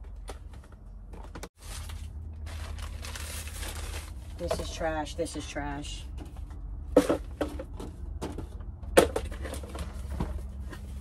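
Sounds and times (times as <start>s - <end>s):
cardboard boxes rustling and clattering: 7.0s - 11.0s.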